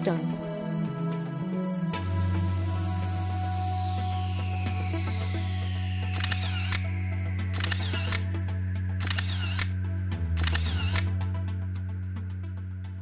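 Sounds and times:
background music: 0.0 - 13.0
camera shutter click and whir: 6.2 - 6.9, 7.6 - 8.3, 9.0 - 9.8, 10.4 - 11.2.

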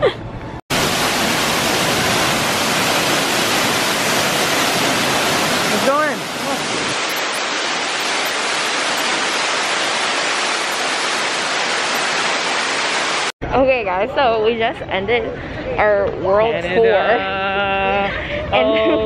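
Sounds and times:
waterfall rushing: 0.7 - 13.4.

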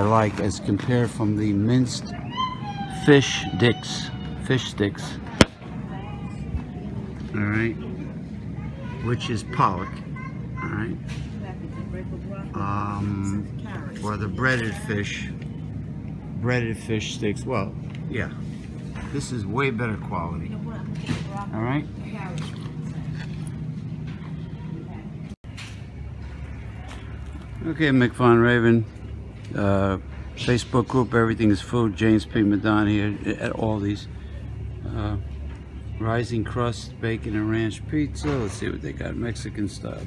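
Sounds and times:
faint distant voices: 0.0 - 40.0
shop background hum: 0.0 - 40.0.

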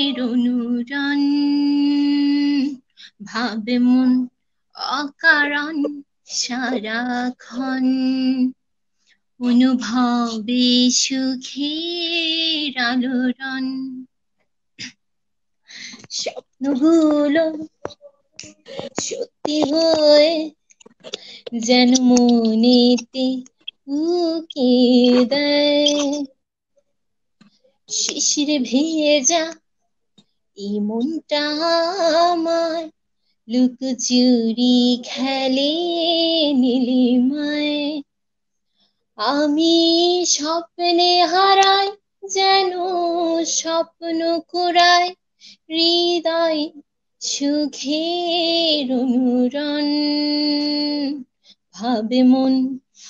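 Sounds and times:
woman singing unaccompanied: 0.0 - 8.6, 9.4 - 14.1, 16.1 - 20.6, 21.2 - 26.3, 27.9 - 29.6, 30.6 - 32.9, 33.5 - 38.0, 39.2 - 52.9.

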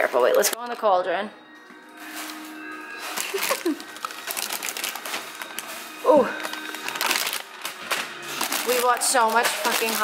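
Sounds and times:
plastic wrappers crinkling: 2.0 - 10.0.

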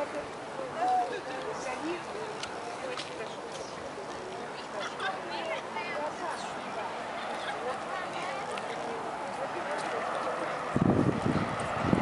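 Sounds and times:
people talking indistinctly: 0.0 - 10.8
outdoor background noise: 0.0 - 12.0.

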